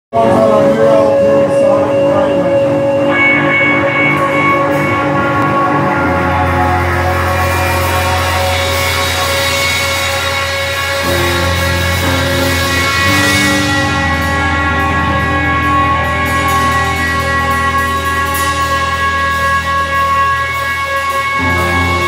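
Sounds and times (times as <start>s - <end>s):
drums: 0.1s - 22.0s
electric guitars droning: 0.1s - 22.0s
deep low note: 0.2s - 20.6s.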